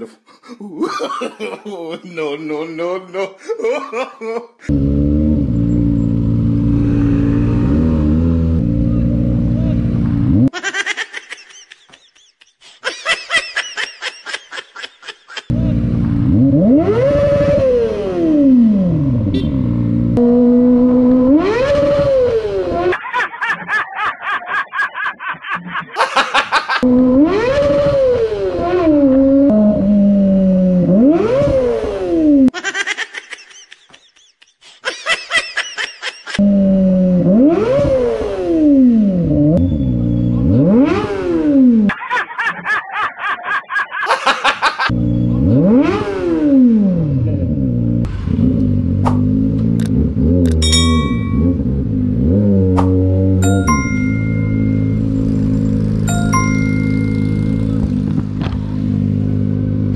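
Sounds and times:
people laughing: 0:00.5 - 0:04.7, 0:10.6 - 0:15.5, 0:22.9 - 0:26.8, 0:32.6 - 0:36.4, 0:41.9 - 0:44.9
motorcycle engine revving: 0:04.7 - 0:10.5, 0:15.5 - 0:22.8, 0:54.2 - 0:59.9.

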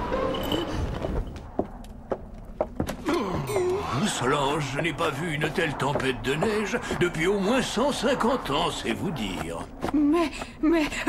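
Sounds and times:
snowstorm wind: 0:00.0 - 0:11.0
footsteps on wooden floor: 0:01.0 - 0:03.9.

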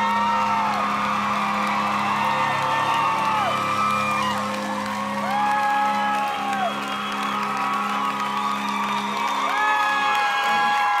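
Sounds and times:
crowd whooping: 0:00.0 - 0:11.0.

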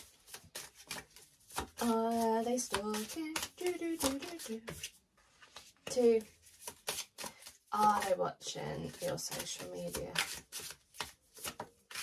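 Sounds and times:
cards being shuffled: 0:00.0 - 0:08.2, 0:08.8 - 0:12.0.

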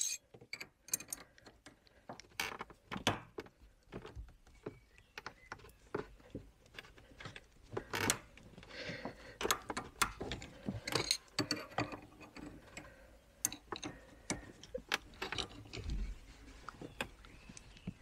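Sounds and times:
spanners clinking and scraping: 0:00.0 - 0:00.2.

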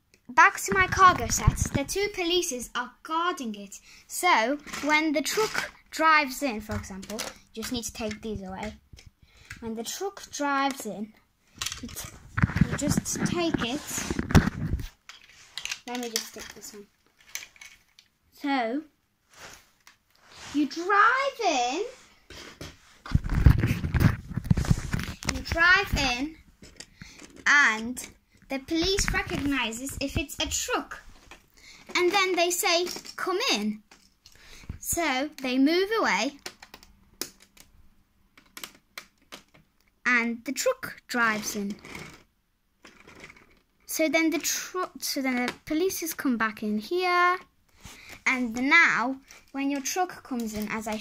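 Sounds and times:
plastic toy bricks clicking: 0:11.6 - 0:13.0, 0:15.1 - 0:18.1, 0:32.0 - 0:33.3, 0:36.2 - 0:39.6.

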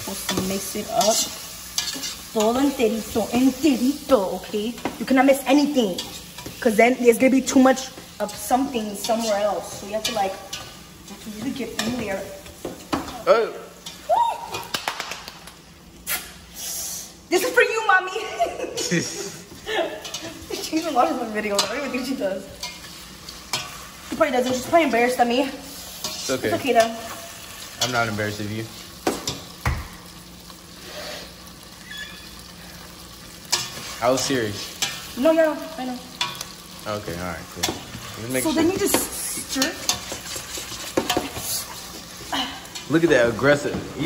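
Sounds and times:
meat sizzling in a pot: 0:00.0 - 0:44.0
high-pitched squeak: 0:31.8 - 0:32.4.

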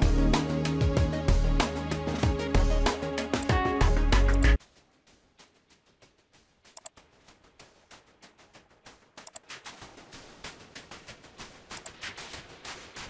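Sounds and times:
thin hissy music residue: 0:04.6 - 0:13.0.

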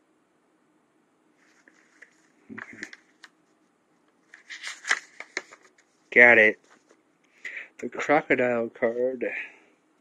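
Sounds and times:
paper pages rustling: 0:01.4 - 0:03.6, 0:04.2 - 0:07.0.

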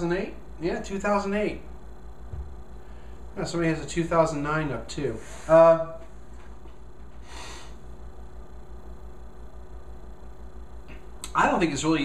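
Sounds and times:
low hum: 0:00.0 - 0:12.0
breath through the nose: 0:07.2 - 0:07.8.

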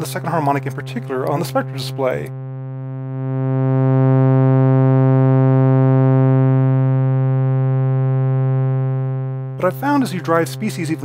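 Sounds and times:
held synthesizer note: 0:00.8 - 0:11.0.

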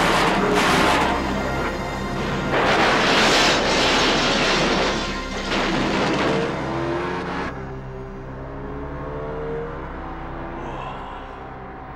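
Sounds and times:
clattering debris: 0:00.0 - 0:06.7
music: 0:00.0 - 0:11.9.

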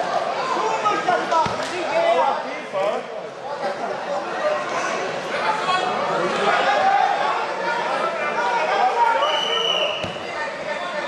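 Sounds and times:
crowd chatter in a large hall: 0:00.0 - 0:11.0.

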